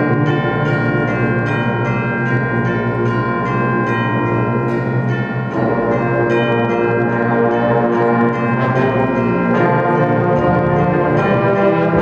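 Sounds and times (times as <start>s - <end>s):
concert band playing: 0.0s - 12.0s
tubular bells ringing: 0.0s - 12.0s.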